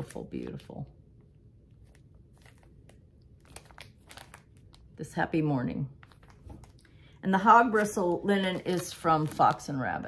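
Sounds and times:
plastic bag crinkling: 0:01.8 - 0:05.0, 0:06.0 - 0:10.0.

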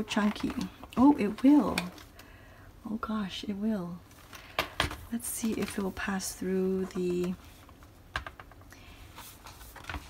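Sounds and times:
paper rustling: 0:08.3 - 0:10.0.

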